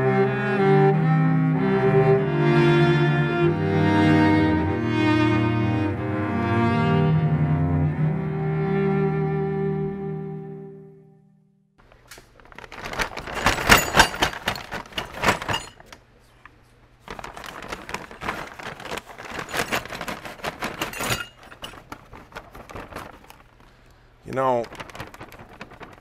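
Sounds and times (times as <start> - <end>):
paper bag crinkling and rustling: 11.8 - 16.0, 17.0 - 26.0
metal parts clinking: 12.5 - 16.0, 19.1 - 22.5.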